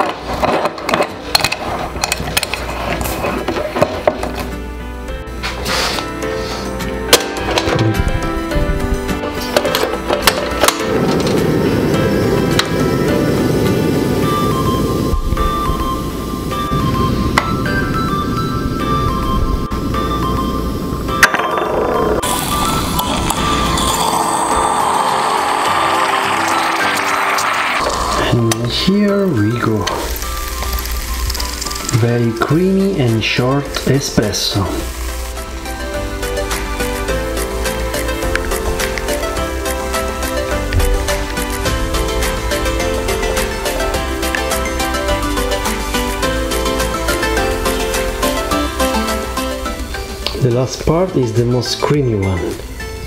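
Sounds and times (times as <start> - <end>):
gas stove burner hissing: 0.0 - 21.3, 21.9 - 51.0
background music: 0.0 - 53.0
moka pot sputtering: 22.2 - 48.2.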